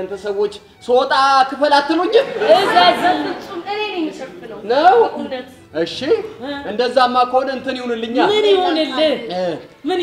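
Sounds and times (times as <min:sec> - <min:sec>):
actors speaking dialogue: 0:00.0 - 0:10.0.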